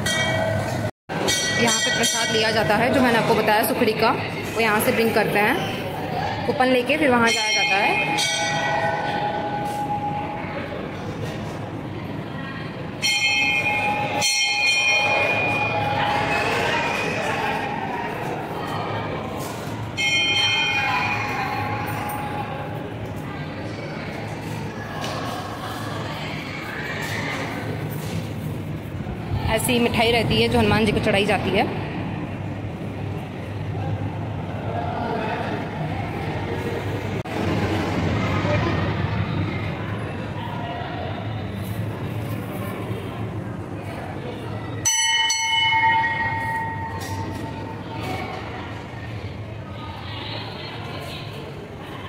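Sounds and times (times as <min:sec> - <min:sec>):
metal bell ringing: 0:00.0 - 0:03.2, 0:07.2 - 0:10.4, 0:13.0 - 0:17.0, 0:44.8 - 0:47.8.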